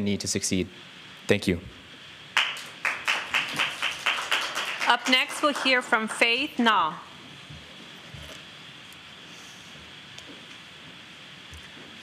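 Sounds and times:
small audience clapping: 2.4 - 6.6.

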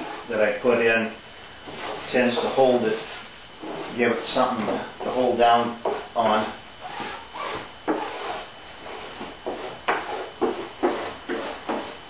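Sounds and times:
brush scrubbing scratchy strokes: 0.0 - 0.6, 1.6 - 12.0.

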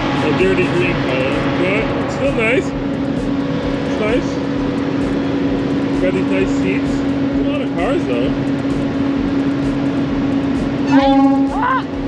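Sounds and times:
ferry engine hum: 0.0 - 12.0.

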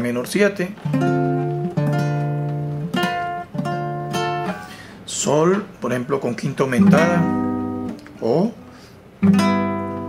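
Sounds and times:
classical guitar chords strummed: 0.7 - 10.0.

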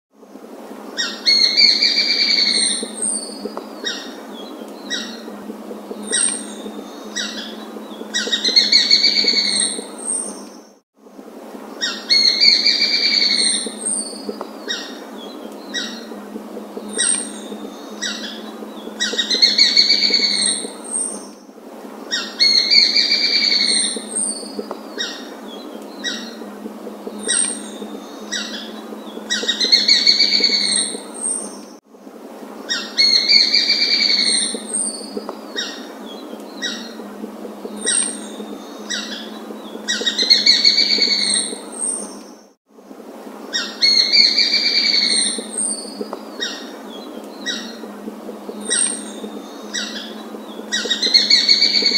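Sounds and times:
steady background hiss: 0.2 - 51.9
rapidly pulsed bird call: 1.0 - 10.4, 11.8 - 21.4, 22.2 - 31.6, 32.7 - 42.2, 43.6 - 51.9.

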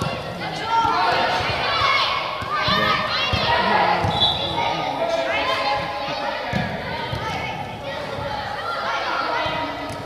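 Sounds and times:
children calling and shouting: 0.0 - 10.0
footballs kicked and thudding: 6.5 - 7.4.

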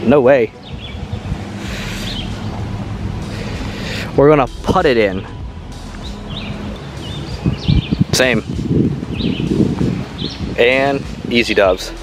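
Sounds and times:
wind on microphone: 0.6 - 12.0
low steady hum: 0.9 - 8.1.

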